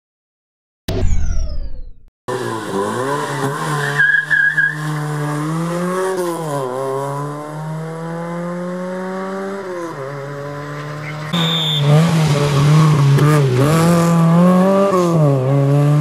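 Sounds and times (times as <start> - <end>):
rally car engine revving: 2.3 - 16.0
tyre squeal: 3.2 - 5.1, 10.8 - 12.1.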